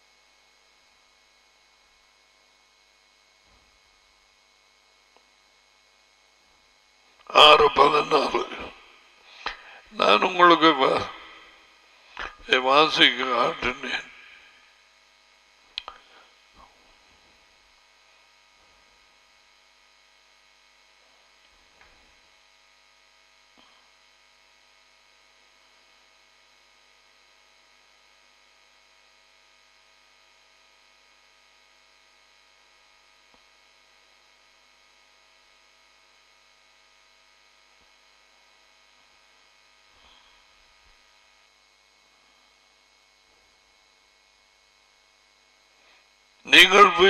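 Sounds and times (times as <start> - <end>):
faint electrical hum: 0.0 - 47.0.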